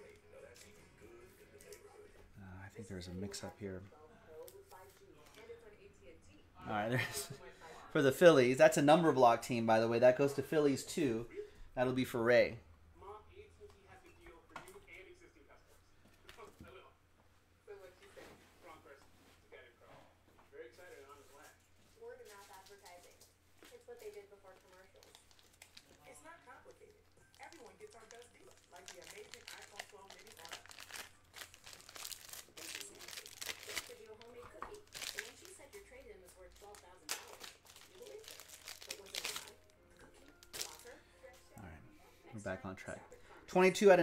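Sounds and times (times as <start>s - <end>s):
plastic packaging crinkling: 23.9s - 26.2s, 26.8s - 41.0s
packaging tearing: 27.4s - 35.6s, 36.6s - 39.6s, 40.4s - 40.9s.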